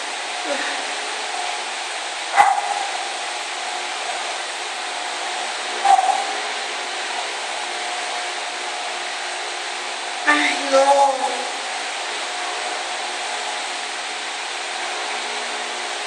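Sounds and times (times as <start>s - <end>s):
steady rushing noise: 0.0s - 15.3s.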